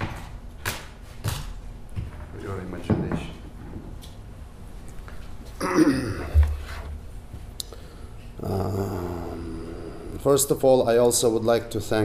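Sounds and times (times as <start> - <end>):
man humming hesitation sound: 8.4 - 10.2.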